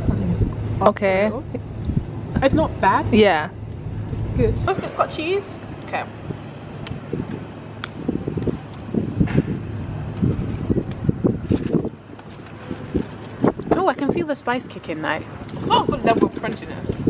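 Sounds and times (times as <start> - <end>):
distant traffic hum: 0.0 - 17.0
wind buffeting microphone: 0.0 - 17.0.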